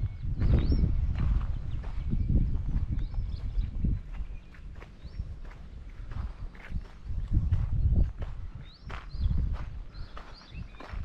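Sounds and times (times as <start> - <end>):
footsteps on a path: 0.0 - 11.0
wind rumble on microphone: 0.0 - 11.0.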